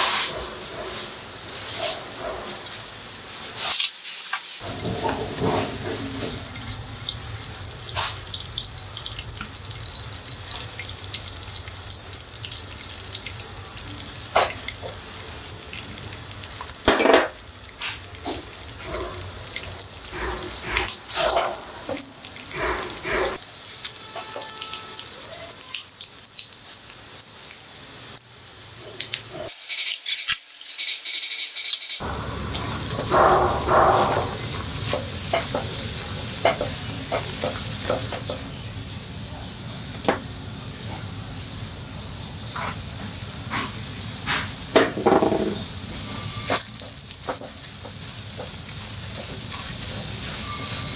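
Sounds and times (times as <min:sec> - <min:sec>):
spatula stirring and scraping pan: 0:00.0 - 0:02.8, 0:04.6 - 0:06.5, 0:17.8 - 0:23.4, 0:42.6 - 0:42.8
butter sizzling in a frying pan: 0:00.0 - 0:50.9.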